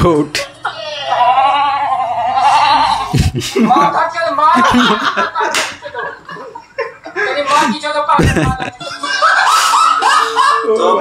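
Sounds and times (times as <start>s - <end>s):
men laughing and chattering: 0.4s - 11.0s
sharp slap-like smacks: 5.5s - 5.8s.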